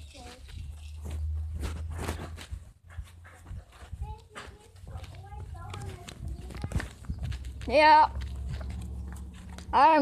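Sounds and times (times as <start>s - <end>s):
wind rumble on microphone: 5.9s - 8.9s.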